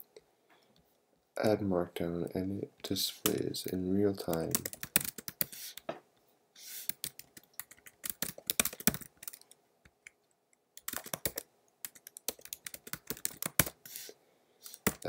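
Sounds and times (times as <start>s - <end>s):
computer keyboard typing: 4.2s - 5.8s, 6.8s - 10.2s, 10.8s - 13.9s, 14.7s - 15.0s.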